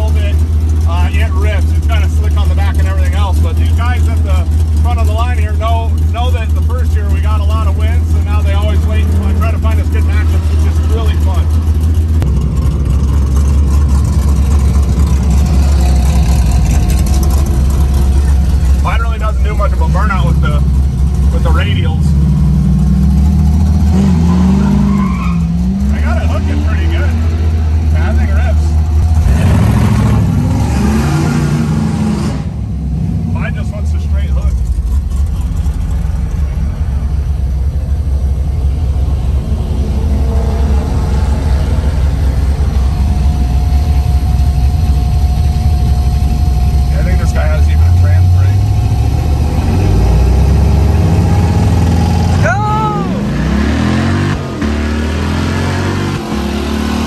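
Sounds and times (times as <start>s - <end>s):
car engine idling: 0.0s - 56.6s.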